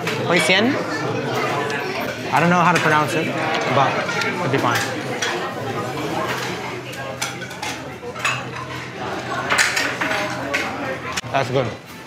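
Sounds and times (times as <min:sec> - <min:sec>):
murmur of people talking: 0:00.0 - 0:12.0
plates and cutlery clinking: 0:01.1 - 0:11.2.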